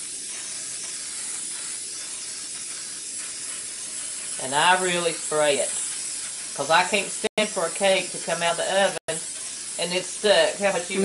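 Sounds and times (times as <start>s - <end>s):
aerosol spray hissing: 0.0s - 11.0s.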